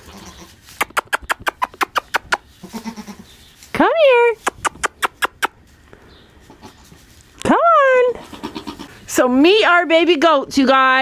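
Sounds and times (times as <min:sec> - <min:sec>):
goat kid bleating: 0:00.0 - 0:00.8, 0:01.6 - 0:03.4, 0:06.4 - 0:07.0, 0:08.0 - 0:09.2
sharp clicks: 0:04.4 - 0:05.6.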